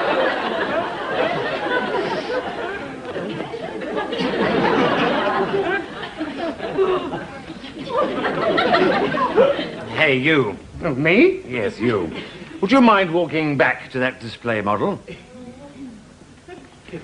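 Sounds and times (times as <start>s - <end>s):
studio audience laughing: 0.0s - 9.9s.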